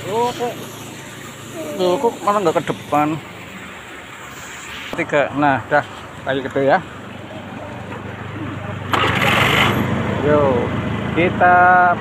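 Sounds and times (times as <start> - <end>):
scooter engine running: 0.0 - 3.2, 7.3 - 12.0
rushing noise: 8.2 - 10.9.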